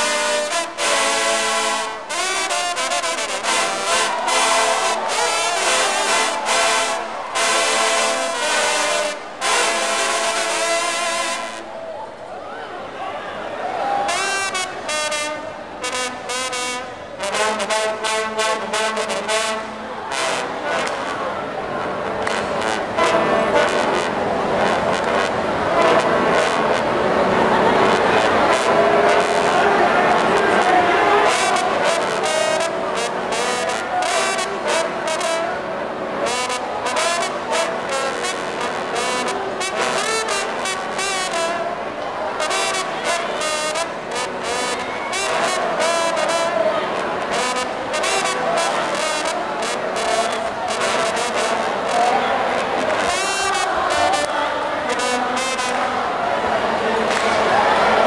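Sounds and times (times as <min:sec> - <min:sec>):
trombones playing together: 0:00.0 - 0:12.0, 0:13.9 - 0:58.0.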